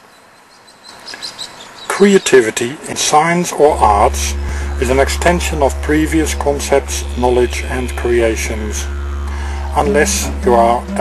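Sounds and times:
steady outdoor hiss: 0.0s - 11.0s
high bird chirps: 0.5s - 2.5s.

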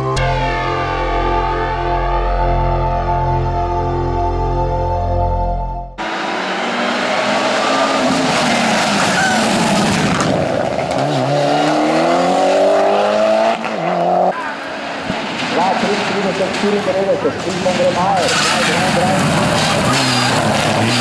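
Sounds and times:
music: 0.0s - 6.0s
race car engine accelerating: 6.0s - 14.3s, 15.3s - 21.0s.

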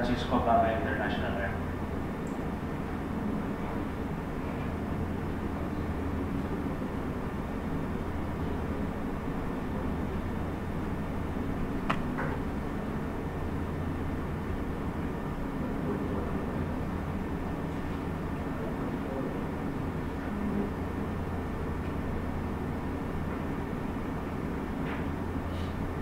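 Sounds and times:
constant low hum: 0.0s - 26.0s.

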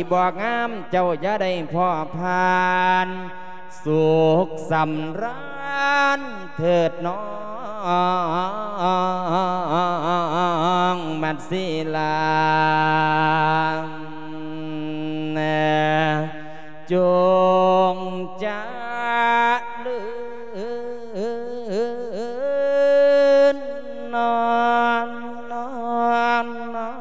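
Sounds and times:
man chanting into a microphone: 0.0s - 27.0s.

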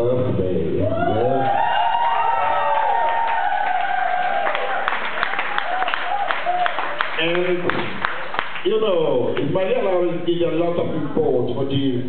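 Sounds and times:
crowd cheering: 0.8s - 8.7s
people clapping: 2.3s - 9.6s.

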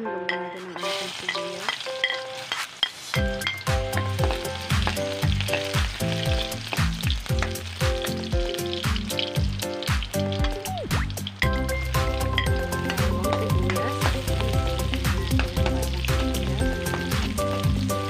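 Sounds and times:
garlic sizzling in oil: 0.4s - 18.0s
background music with bass beat: 6.2s - 18.0s.

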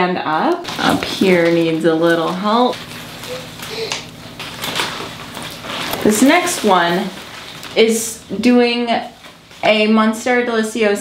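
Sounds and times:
leaves and stems rustling: 0.7s - 10.1s.

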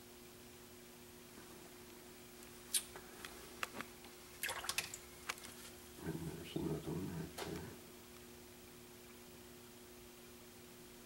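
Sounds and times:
faint steady hum: 0.0s - 11.0s
small water splashes: 4.4s - 5.0s.

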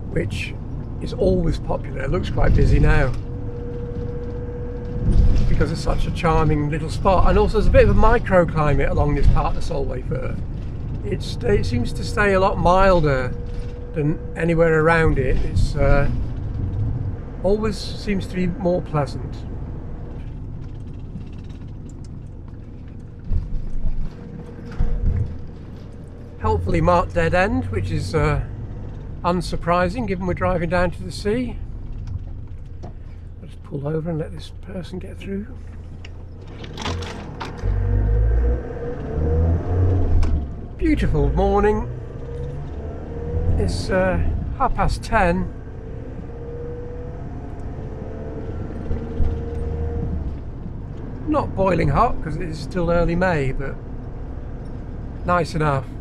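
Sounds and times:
engine and road rumble: 0.0s - 56.0s
faint rattles: 0.0s - 56.0s.

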